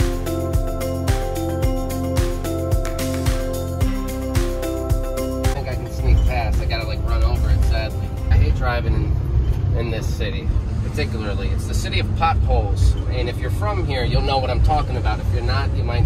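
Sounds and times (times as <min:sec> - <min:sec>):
music: 0:00.0 - 0:09.7
engine and road rumble: 0:00.0 - 0:16.0.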